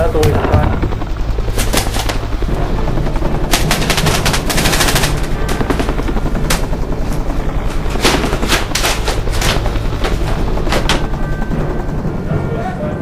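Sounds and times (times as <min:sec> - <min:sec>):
paintball markers firing: 0:01.5 - 0:02.3, 0:03.5 - 0:06.7.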